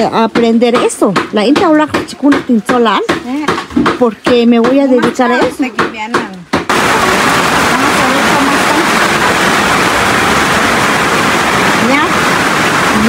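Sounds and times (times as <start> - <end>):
loud rushing noise: 6.7 - 13.0.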